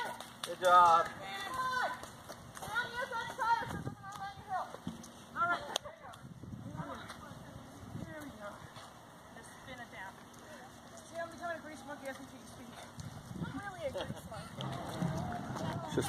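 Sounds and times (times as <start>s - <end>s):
people talking and calling: 0.0s - 16.0s.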